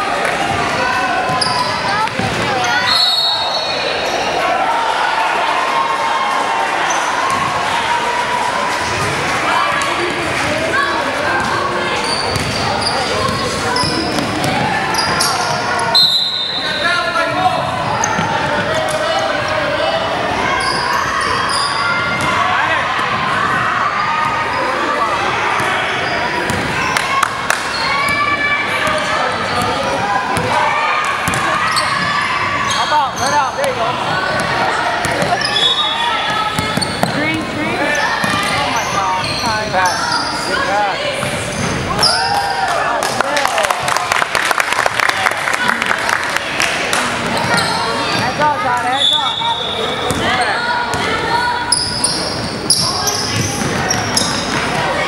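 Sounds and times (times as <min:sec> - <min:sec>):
voices echoing in hall: 0:00.0 - 0:55.0.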